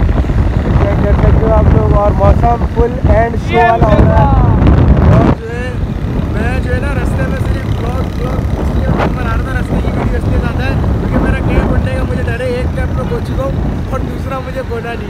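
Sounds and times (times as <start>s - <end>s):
wind buffeting microphone: 0.0s - 15.0s
man talking: 0.7s - 15.0s.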